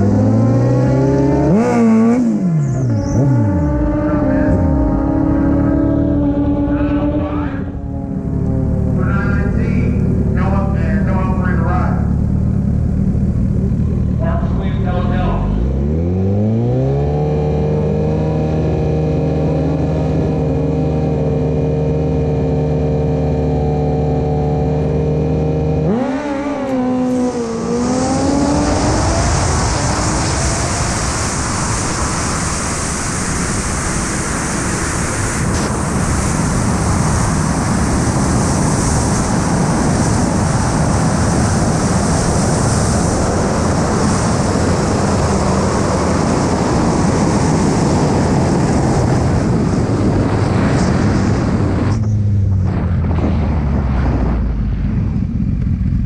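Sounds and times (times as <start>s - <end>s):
motorcycle engine revving: 0.0s - 56.0s
wind rush on microphone: 25.9s - 56.0s.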